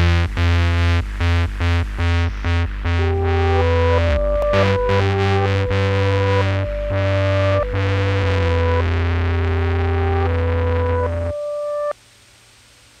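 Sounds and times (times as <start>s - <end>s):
low synth bass: 0.0s - 11.9s
synthesizer chords: 0.0s - 11.9s
faint hiss: 11.9s - 13.0s.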